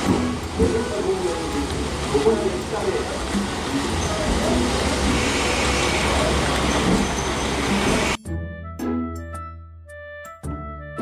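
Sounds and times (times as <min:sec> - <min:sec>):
background music: 0:00.0 - 0:05.2, 0:07.7 - 0:11.0
diesel railcar engine rumble: 0:00.0 - 0:08.2.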